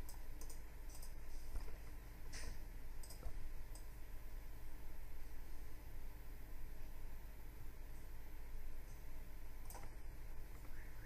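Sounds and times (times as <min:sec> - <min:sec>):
computer mouse clicking: 0:00.0 - 0:03.9, 0:09.6 - 0:10.8
low electrical hum: 0:00.0 - 0:11.0.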